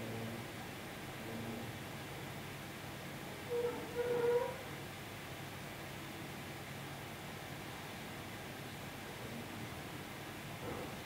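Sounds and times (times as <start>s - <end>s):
low hiss: 0.0s - 11.0s.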